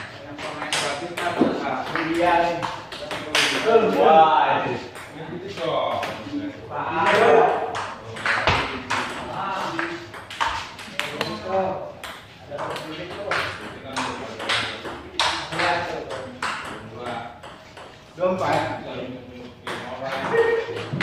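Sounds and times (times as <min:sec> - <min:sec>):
ping-pong ball clicks: 0:07.7 - 0:09.2, 0:12.0 - 0:18.7.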